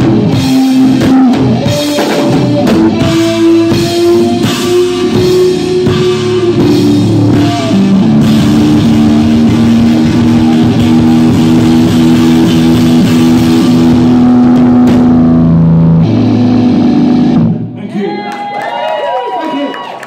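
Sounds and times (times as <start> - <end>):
live rock band playing: 0.0 - 17.8.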